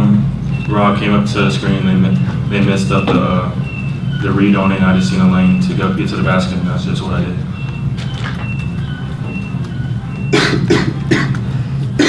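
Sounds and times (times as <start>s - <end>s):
person coughing: 10.3s - 12.0s.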